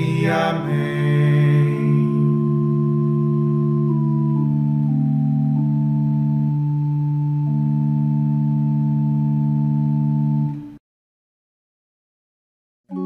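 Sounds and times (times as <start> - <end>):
sustained organ chord: 0.0 - 10.8.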